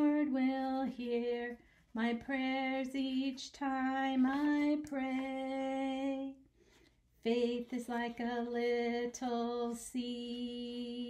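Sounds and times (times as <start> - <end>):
woman singing unaccompanied: 0.0 - 6.4, 7.2 - 11.0.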